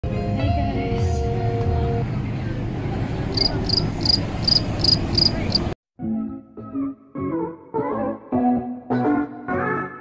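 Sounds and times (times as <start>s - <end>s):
rushing background noise: 2.0s - 5.8s
insect chirping: 3.4s - 5.7s.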